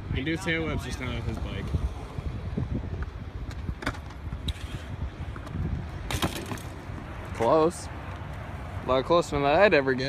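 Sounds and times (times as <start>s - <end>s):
wind on microphone: 0.0s - 7.4s
bike tyres rumbling on concrete: 0.8s - 8.4s
bike clattering on concrete: 3.4s - 7.7s.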